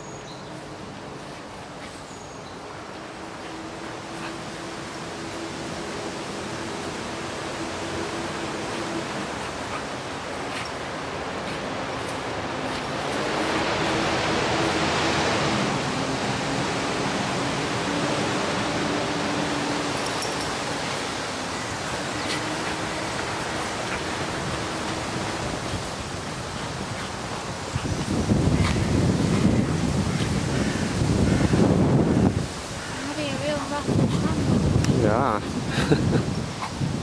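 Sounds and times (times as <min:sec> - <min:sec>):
wind rushing over microphone: 0:03.2 - 0:37.0.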